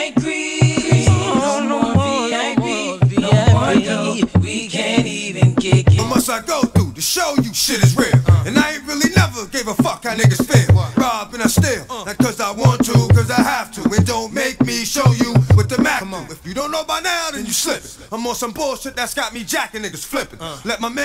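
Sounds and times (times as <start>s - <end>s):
rapping over a beat: 0.0s - 19.6s
heavy bass line: 3.0s - 4.6s, 5.4s - 7.0s, 7.8s - 9.4s, 10.2s - 11.8s.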